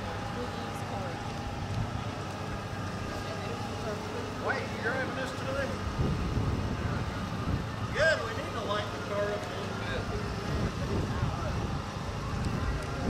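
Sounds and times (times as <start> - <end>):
people talking indistinctly: 0.0 - 13.0
steady low rumble: 0.0 - 13.0.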